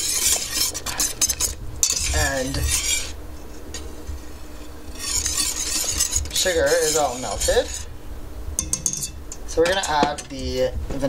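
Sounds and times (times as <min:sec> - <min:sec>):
whisk scraping metal saucepan: 0:00.0 - 0:08.0, 0:08.6 - 0:10.4.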